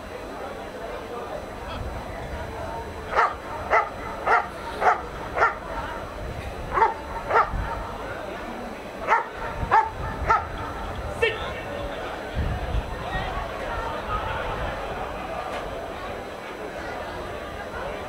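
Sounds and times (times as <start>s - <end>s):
dog barking: 3.1s - 5.7s, 6.7s - 7.8s, 9.0s - 10.6s.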